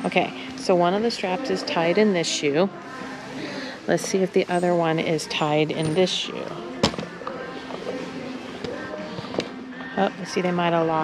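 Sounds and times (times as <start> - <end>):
faint voices: 0.0 - 11.0.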